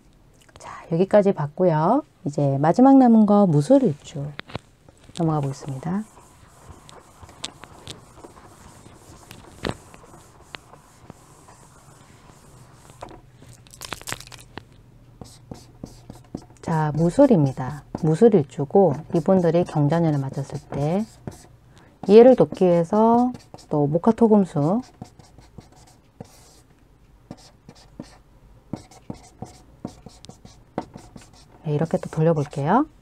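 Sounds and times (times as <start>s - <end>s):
chalk scraping on chalkboard: 5.4s - 13.0s, 15.2s - 18.2s, 18.9s - 23.8s, 28.8s - 32.6s.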